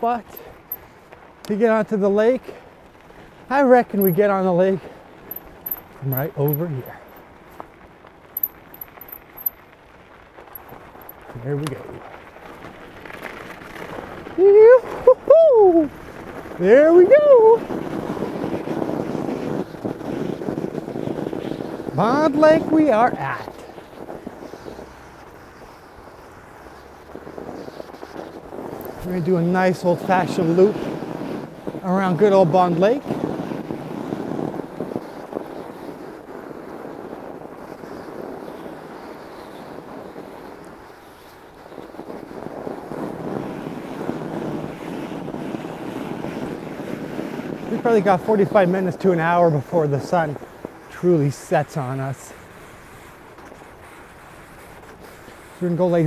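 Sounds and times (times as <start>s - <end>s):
bike tyres rolling over crusted snow: 0.0s - 56.0s
wind on microphone: 10.7s - 56.0s.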